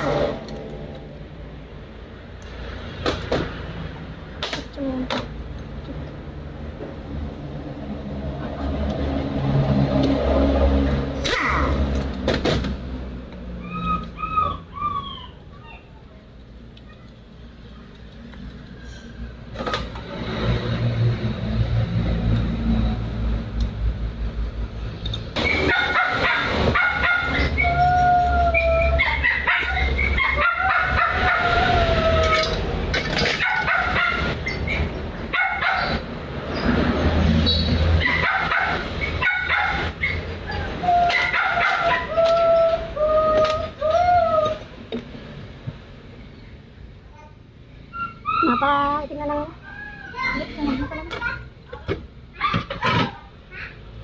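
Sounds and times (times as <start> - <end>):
dog whining: 13.6 - 16.0, 26.9 - 32.6, 40.0 - 44.7, 47.9 - 48.8.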